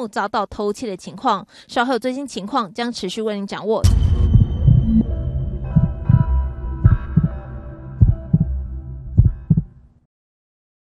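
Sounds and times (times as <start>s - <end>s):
deep double thumps: 3.8s - 7.4s, 8.0s - 9.7s
sustained synthesized tones: 3.8s - 9.2s.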